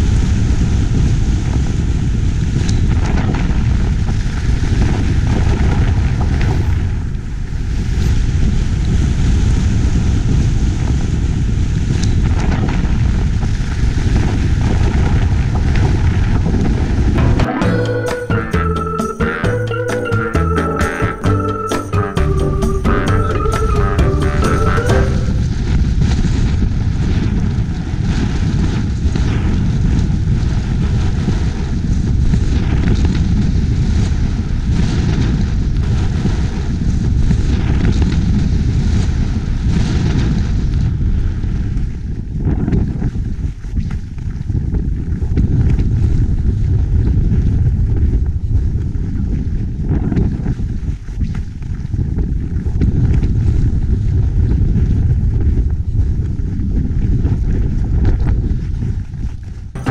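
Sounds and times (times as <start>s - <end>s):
wind buffeting microphone: 0.0s - 17.2s, 24.7s - 59.9s.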